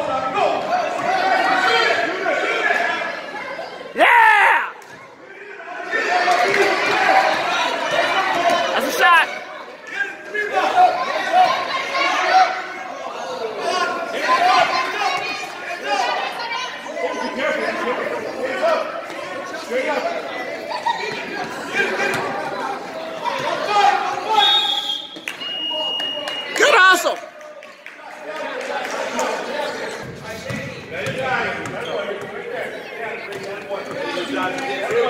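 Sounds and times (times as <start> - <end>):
crowd chattering: 0.0 - 35.0.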